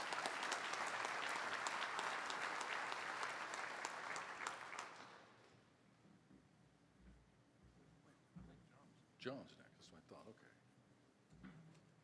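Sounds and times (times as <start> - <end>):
audience applauding: 0.0 - 5.4.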